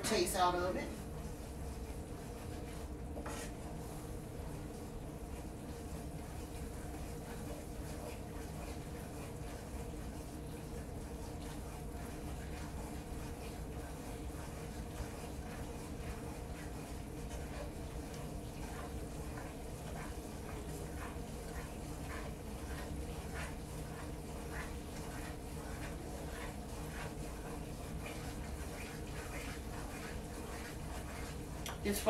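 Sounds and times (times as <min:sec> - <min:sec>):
steady low hum: 0:00.0 - 0:32.0
wooden spoon scraping a pan: 0:00.0 - 0:32.0.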